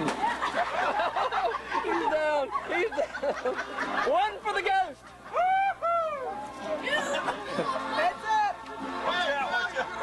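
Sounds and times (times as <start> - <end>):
high-pitched hooting laughter: 5.2 - 8.0
softer laughing voices: 6.9 - 8.0.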